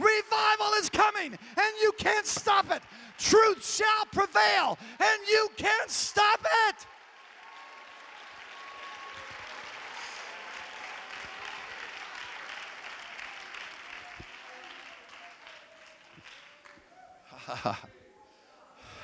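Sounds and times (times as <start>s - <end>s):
congregation applauding: 0.0s - 16.9s.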